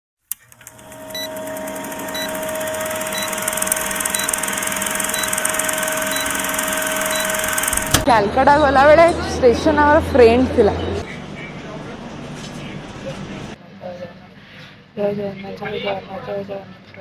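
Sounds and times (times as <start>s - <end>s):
film projector clatter and whir: 0.3s - 8.1s
humming tone: 0.3s - 8.1s
short high beeps: 1.1s - 8.0s.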